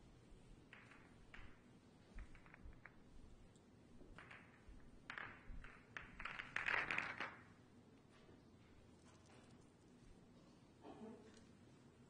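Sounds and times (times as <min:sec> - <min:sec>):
pool balls clicking: 0:00.3 - 0:07.6.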